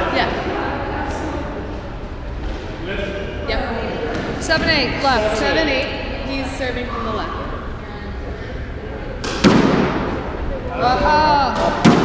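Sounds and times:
squash racket hitting ball: 9.2 - 10.4, 11.5 - 12.0.

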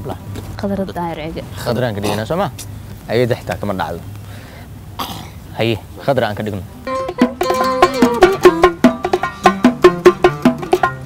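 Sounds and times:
person clearing throat: 2.0 - 2.3, 5.0 - 5.4.

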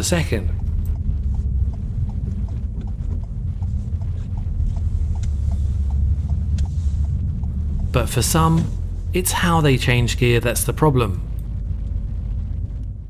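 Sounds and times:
car engine and road noise: 0.0 - 13.0
light ticking: 0.0 - 13.0.

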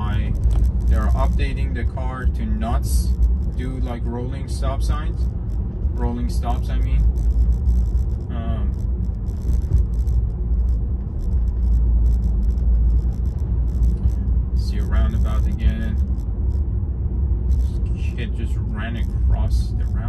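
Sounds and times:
road and tyre rumble in car: 0.0 - 20.0.

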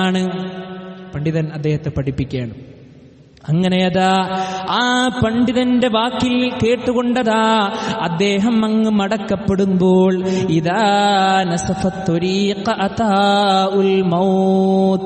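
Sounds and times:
man chanting melodically: 0.0 - 2.6, 3.4 - 15.0.

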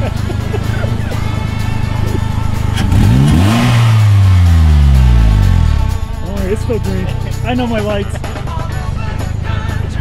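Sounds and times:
background music: 0.0 - 10.0
engine revving: 1.2 - 7.7.

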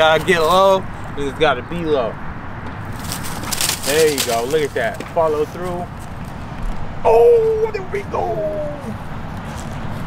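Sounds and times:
dry leaves crunching underfoot: 2.8 - 6.2
man's voice: 7.0 - 9.0.

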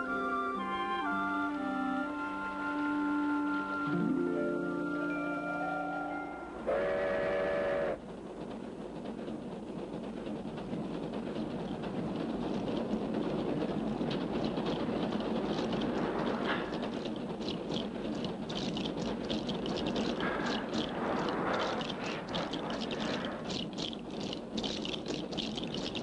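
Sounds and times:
train rumbling: 0.0 - 26.0
rapid hissing beats: 6.7 - 26.0.

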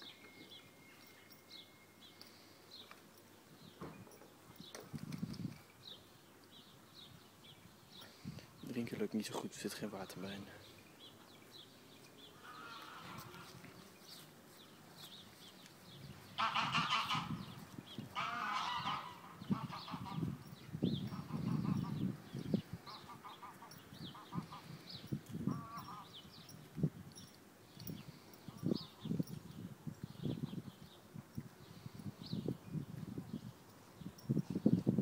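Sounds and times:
goose-like honking bird calls: 16.4 - 17.4, 18.2 - 20.2, 22.9 - 24.7, 25.5 - 26.1.

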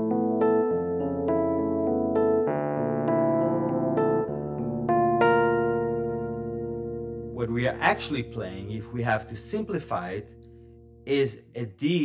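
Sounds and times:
piano chords on keyboard: 0.0 - 12.0.

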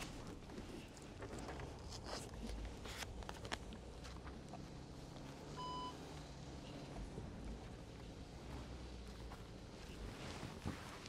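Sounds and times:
faint low rumble: 0.0 - 11.0
short electronic beep: 5.6 - 6.0.

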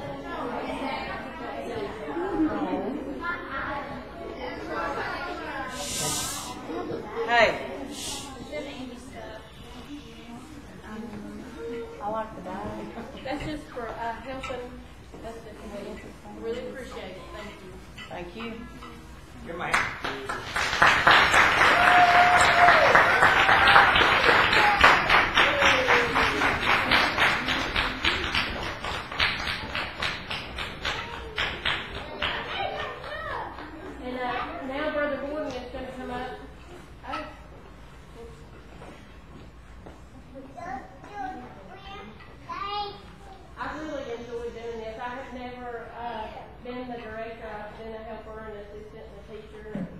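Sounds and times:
person hissing: 5.7 - 6.7, 7.8 - 8.4
audience applause: 19.8 - 33.8.

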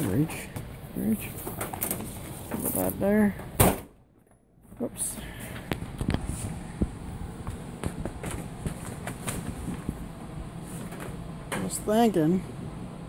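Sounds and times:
low background hum: 0.0 - 13.0
footsteps: 5.4 - 11.2.

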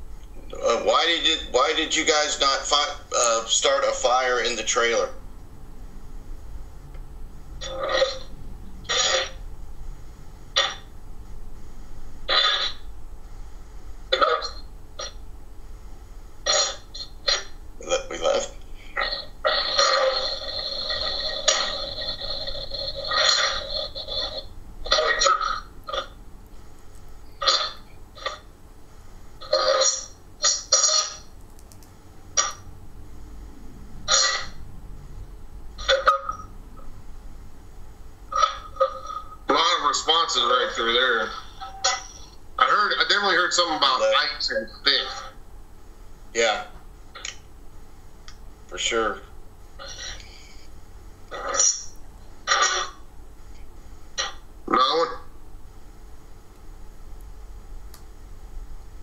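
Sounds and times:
steady held tones: 0.0 - 47.6
radio sweeping through stations: 0.6 - 5.1, 39.5 - 41.7.

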